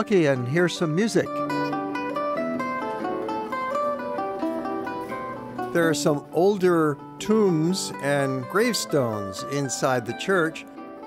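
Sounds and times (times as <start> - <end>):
zither plucked melody: 0.0 - 11.0.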